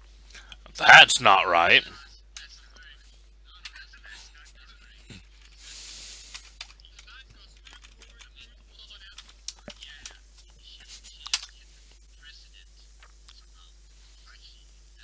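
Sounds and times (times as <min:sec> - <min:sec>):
faint speech over voice call: 0:00.8 - 0:15.0.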